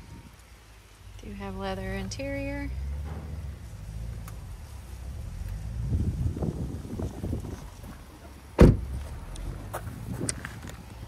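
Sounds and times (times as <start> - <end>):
car door closing thump: 8.6 - 9.1
low scuffing handling noise: 8.9 - 11.0.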